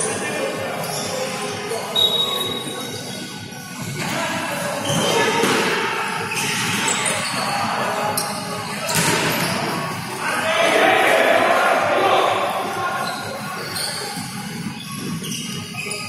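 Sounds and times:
players calling out: 4.0s - 14.6s.

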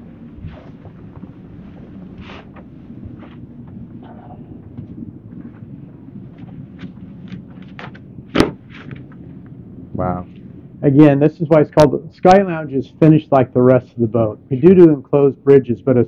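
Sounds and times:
steady low hum: 0.0s - 16.0s
sharp knock: 8.3s - 8.6s.

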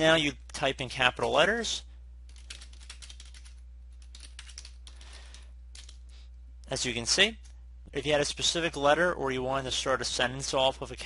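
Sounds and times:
keyboard typing clicks: 2.3s - 5.0s.

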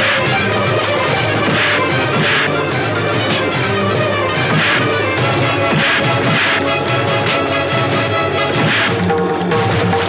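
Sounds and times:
film background music: 0.0s - 10.0s.

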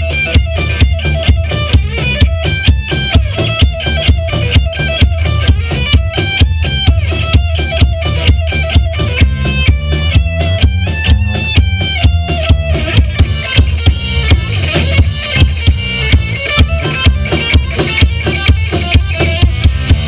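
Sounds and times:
bass guitar: 0.0s - 20.0s
drum kit beat: 0.0s - 20.0s
electric guitar lead notes: 0.0s - 20.0s.

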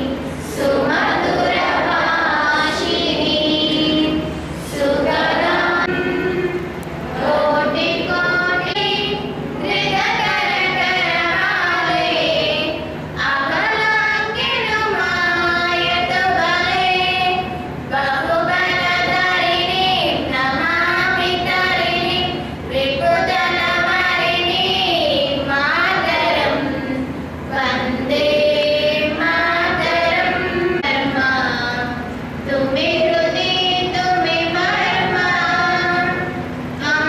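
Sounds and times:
girls singing into a microphone: 0.0s - 37.0s.

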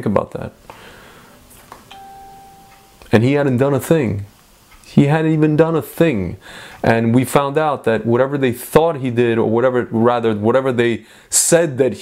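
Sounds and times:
faint steady tone: 0.8s - 4.4s.

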